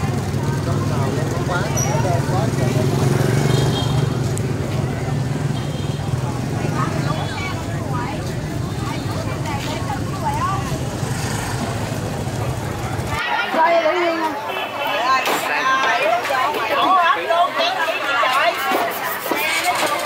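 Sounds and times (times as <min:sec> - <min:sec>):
shoppers and vendors talking: 0:00.0 - 0:20.0.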